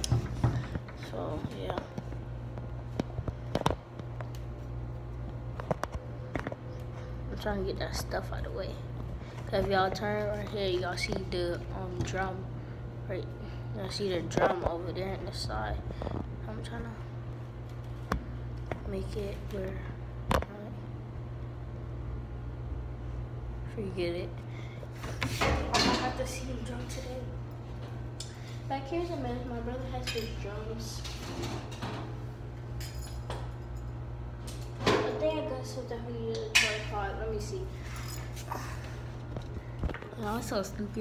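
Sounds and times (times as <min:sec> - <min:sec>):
steady low hum: 0:00.0 - 0:41.0.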